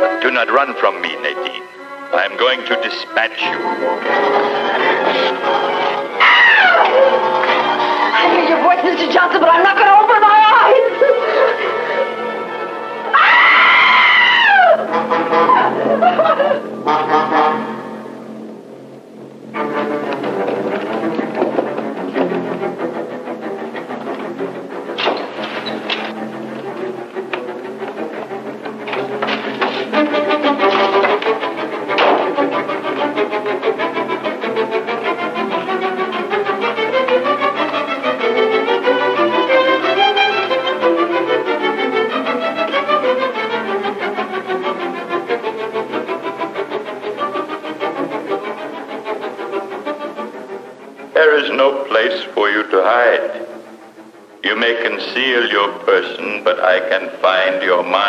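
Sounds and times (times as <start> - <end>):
orchestral strings music: 0.0 - 58.0.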